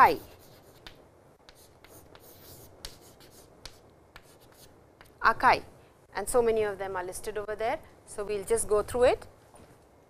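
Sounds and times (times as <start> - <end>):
chalk scratching on chalkboard: 0.0 - 5.1
chalk tapping on board: 0.0 - 5.2.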